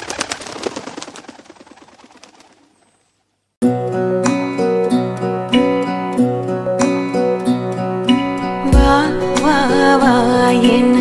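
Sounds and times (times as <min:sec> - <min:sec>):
pigeon wings clattering: 0:00.0 - 0:03.0.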